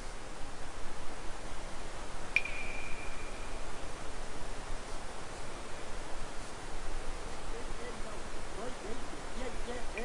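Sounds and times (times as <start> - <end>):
steady hiss: 0.0 - 10.0
high bell-like chime: 2.4 - 3.7.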